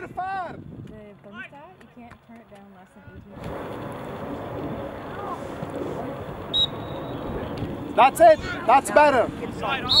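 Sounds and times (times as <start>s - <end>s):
short high whistle toot: 6.5s - 7.2s.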